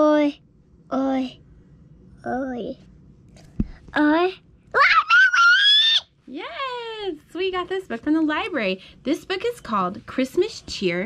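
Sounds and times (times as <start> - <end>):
young child squealing: 4.8 - 6.1.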